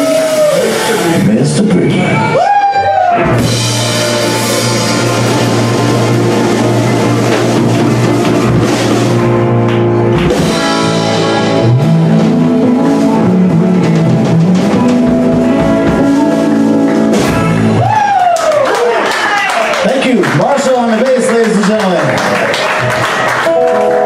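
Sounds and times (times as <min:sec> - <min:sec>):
rock band playing instrumental: 0:00.0 - 0:24.0.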